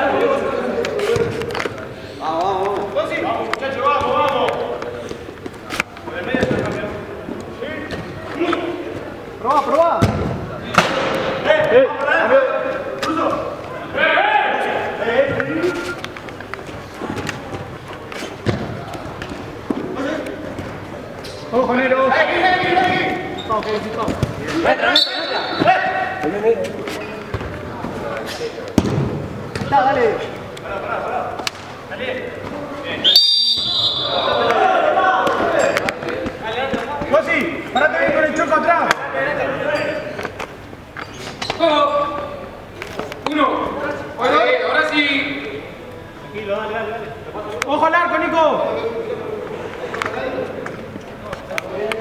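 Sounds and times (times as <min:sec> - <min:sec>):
players shouting: 0:33.0 - 0:36.9.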